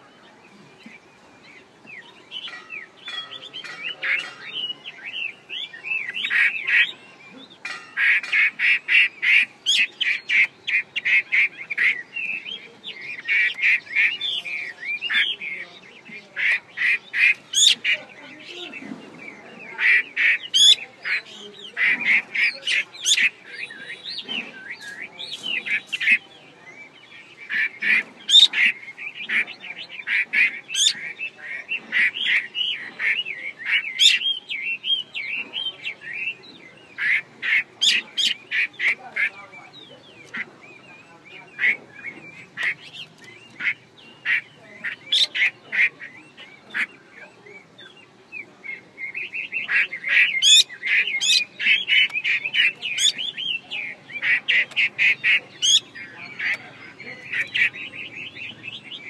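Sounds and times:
bird harsh chattering calls: 0:00.8 - 0:59.0.

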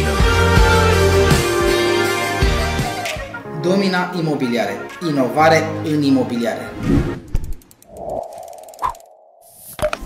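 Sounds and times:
whoosh: 0:06.8 - 0:09.7
rising electronic blip: 0:07.2 - 0:09.5.

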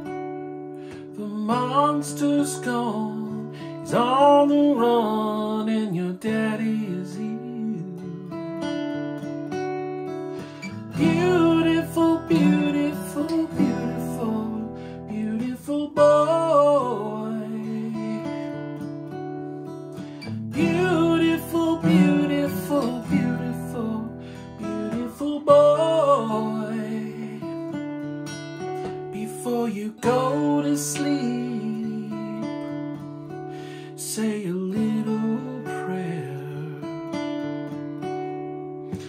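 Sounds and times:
acoustic guitar picked and strummed: 0:00.0 - 0:39.0
man singing: 0:01.0 - 0:08.5, 0:10.5 - 0:18.6, 0:20.2 - 0:27.8, 0:28.9 - 0:32.8, 0:33.7 - 0:37.0.

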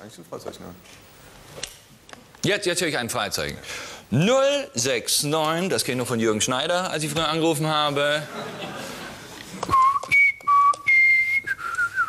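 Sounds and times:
person whistling: 0:09.7 - 0:12.0.

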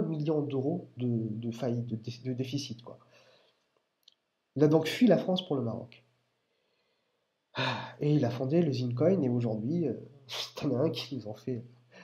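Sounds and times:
man sighing: 0:07.6 - 0:08.0.

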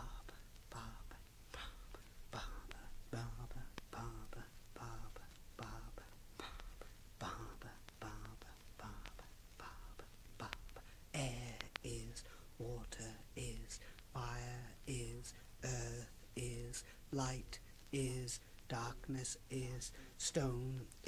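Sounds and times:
man whispering a chant: 0:00.0 - 0:21.0.

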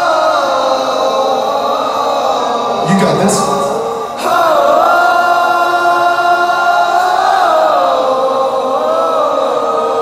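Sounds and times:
crowd singing wordless melody: 0:00.0 - 0:10.0.

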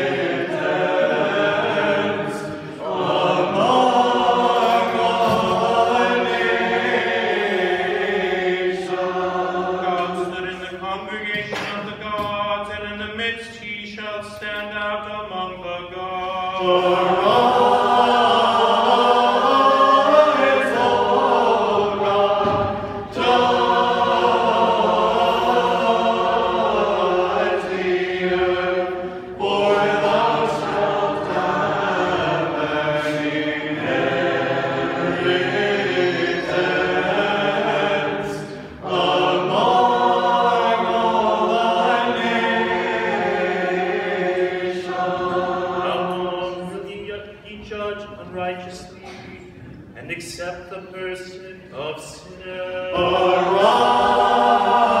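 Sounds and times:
mixed choir chanting unaccompanied: 0:00.0 - 0:12.9, 0:15.2 - 0:47.3, 0:51.8 - 0:55.0.

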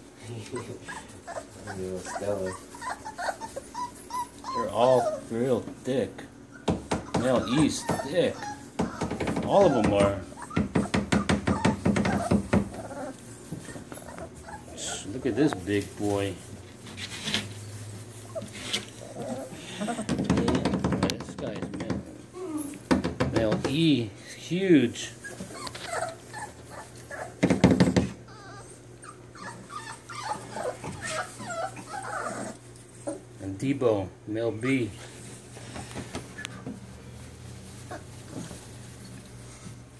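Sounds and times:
puppies whimpering and squeaking: 0:00.1 - 0:39.6.

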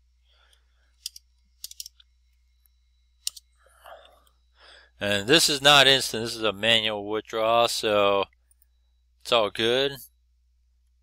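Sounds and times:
computer keyboard and mouse clicks: 0:01.0 - 0:02.0, 0:03.2 - 0:03.4.

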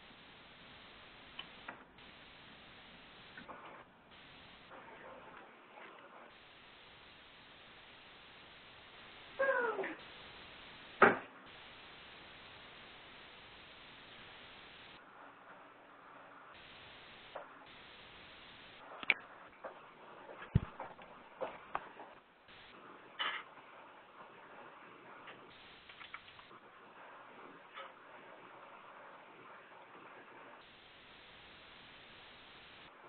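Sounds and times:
telephone line hiss: 0:00.0 - 0:03.5, 0:04.1 - 0:04.8, 0:06.3 - 0:09.4, 0:10.0 - 0:15.0, 0:16.6 - 0:18.8, 0:25.5 - 0:26.5, 0:30.6 - 0:32.9.

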